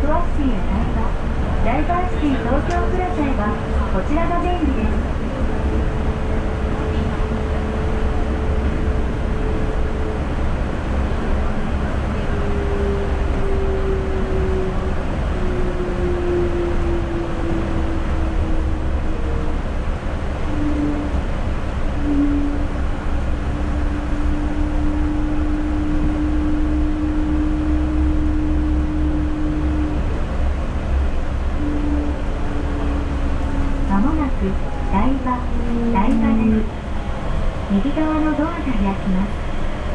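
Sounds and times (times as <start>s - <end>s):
train running on track: 0.0s - 39.9s
train whine sliding down in pitch: 1.0s - 39.9s.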